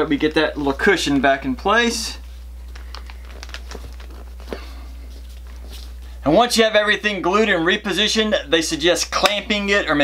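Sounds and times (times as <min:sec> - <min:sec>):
steady low hum: 0:00.0 - 0:10.0
gloved hands tapping and rustling: 0:02.2 - 0:06.1.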